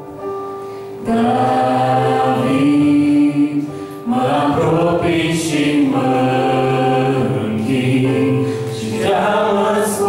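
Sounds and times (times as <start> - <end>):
keyboard accompaniment: 0.0 - 10.0
man and woman singing: 1.1 - 10.0.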